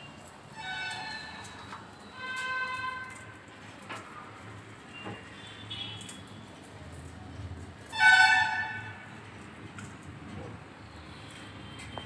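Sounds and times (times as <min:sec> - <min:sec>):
vehicle horn honking: 0:08.0 - 0:09.0.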